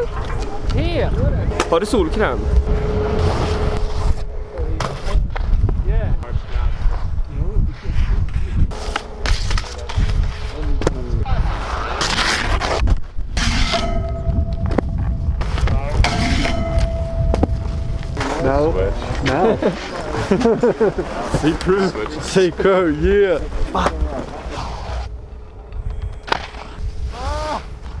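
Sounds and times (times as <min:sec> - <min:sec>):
wind on microphone: 0:00.0 - 0:19.7, 0:24.9 - 0:28.0
skis scraping on snow and rail: 0:07.7 - 0:13.8, 0:18.2 - 0:25.1.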